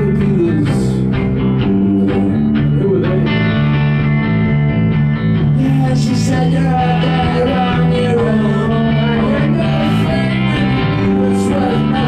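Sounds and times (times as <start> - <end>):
electric guitars: 0.0 - 12.0
low bass line: 0.0 - 12.0.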